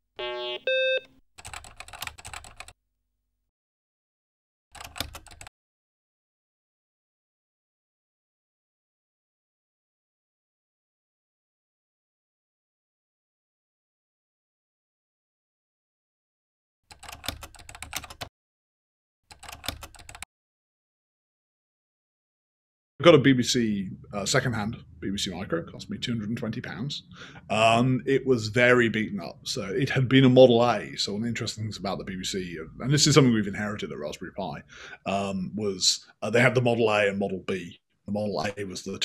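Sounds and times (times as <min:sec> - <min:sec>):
computer keyboard typing: 0:01.4 - 0:02.8, 0:04.7 - 0:05.5, 0:16.9 - 0:18.3, 0:19.3 - 0:20.3.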